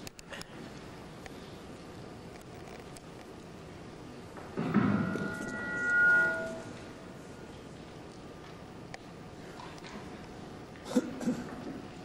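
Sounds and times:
microphone feedback ring: 0:04.7 - 0:07.1.

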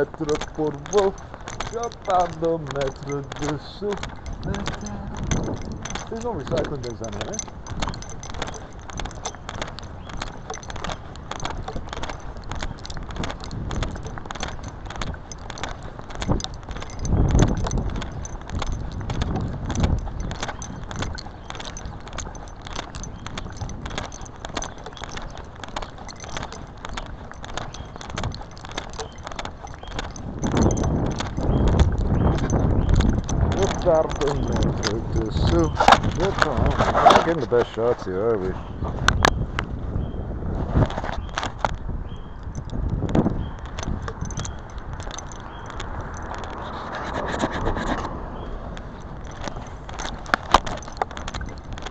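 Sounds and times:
keys jangling: 0:00.0 - 0:37.9, 0:41.0 - 0:51.9
low rumbles: 0:00.0 - 0:47.1
body-worn camera rattling: 0:00.0 - 0:51.9.

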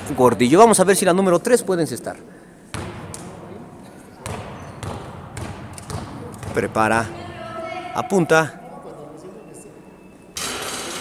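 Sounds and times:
quiet gymnasium ambience: 0:00.0 - 0:11.0.

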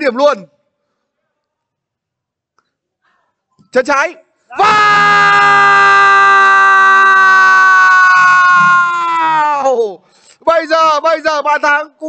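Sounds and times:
commentator shouting: 0:04.5 - 0:11.9.

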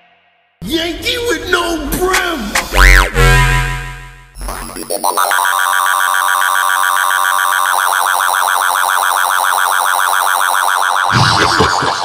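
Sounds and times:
warbling synth chord: 0:02.6 - 0:11.2.

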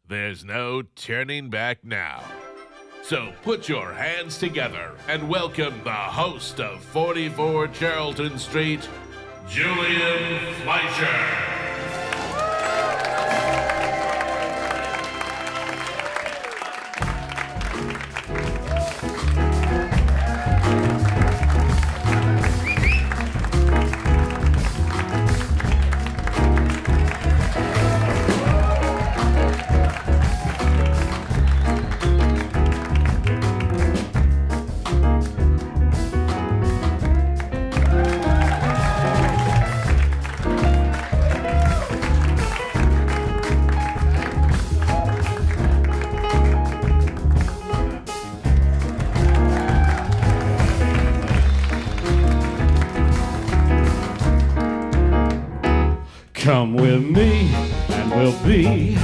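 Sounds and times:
audience applauding: 0:11.9 - 0:34.7, 0:37.4 - 0:55.5
live jazz trio playing: 0:16.9 - 0:59.0
walking double bass: 0:17.6 - 0:59.0.

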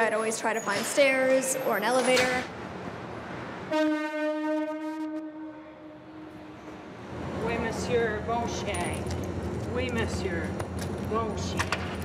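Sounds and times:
train steady pitched tone: 0:03.6 - 0:08.8.

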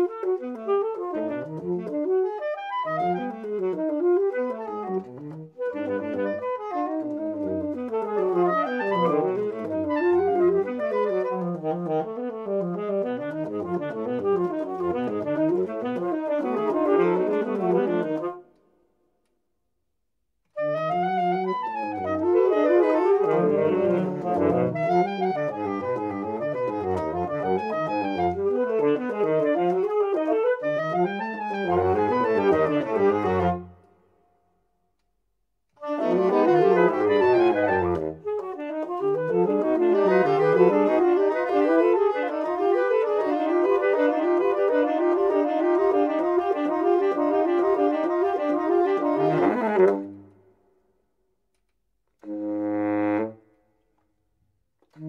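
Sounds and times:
saxophone quartet playing: 0:00.0 - 0:18.6, 0:20.5 - 0:33.9, 0:35.8 - 0:50.5, 0:52.2 - 0:53.6.

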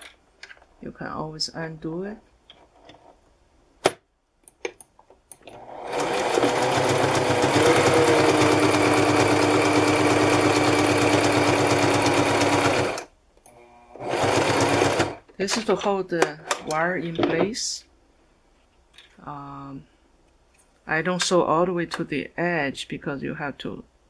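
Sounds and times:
sewing machine stitching: 0:05.4 - 0:15.2.

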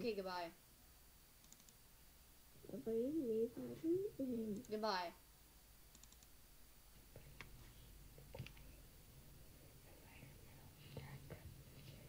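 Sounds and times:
soft clicks: 0:01.4 - 0:01.8, 0:05.9 - 0:06.3
faint whispering: 0:02.6 - 0:04.8, 0:09.5 - 0:12.0.

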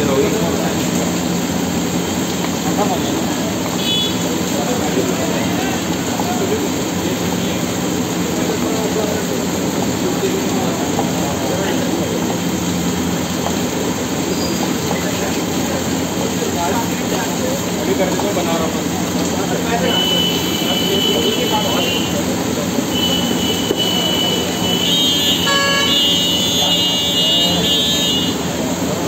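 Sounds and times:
indistinct chatter of people: 0:00.0 - 0:29.0
loud rumble and hiss: 0:00.0 - 0:29.0.

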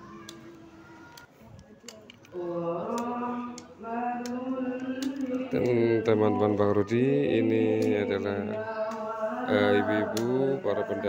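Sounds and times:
voice chanting melismatic recitation: 0:00.0 - 0:11.0.

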